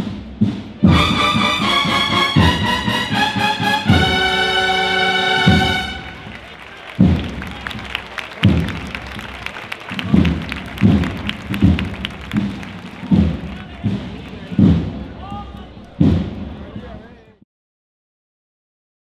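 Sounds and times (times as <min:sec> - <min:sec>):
bass drum beating: 0:00.0 - 0:16.8
crowd chatter: 0:00.7 - 0:17.4.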